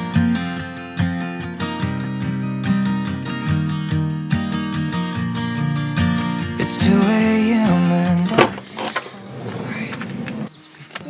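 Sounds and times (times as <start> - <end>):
songbird chirping: 6.6 - 11.0.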